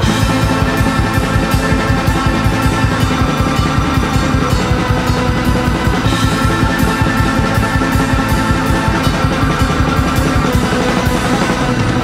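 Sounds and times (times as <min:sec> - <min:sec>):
rock music with drums bass guitars: 0:00.0 - 0:12.0.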